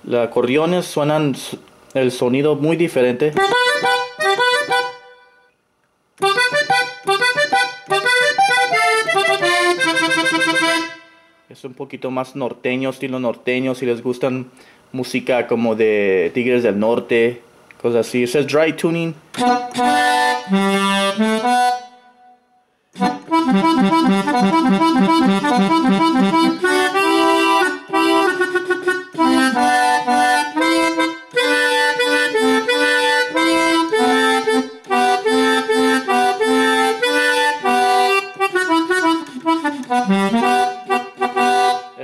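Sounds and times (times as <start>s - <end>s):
accordion melody and chords: 3.0s - 5.6s, 6.2s - 11.5s, 19.3s - 42.0s.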